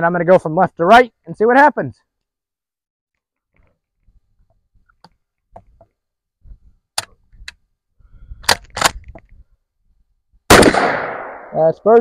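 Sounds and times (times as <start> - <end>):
gun handling clicks and knocks: 3.2 - 6.0, 6.9 - 7.6, 8.4 - 9.4.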